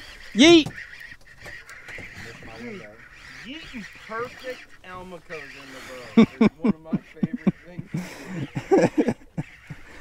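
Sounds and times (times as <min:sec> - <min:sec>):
men shouting playful cries: 0:00.4 - 0:00.7.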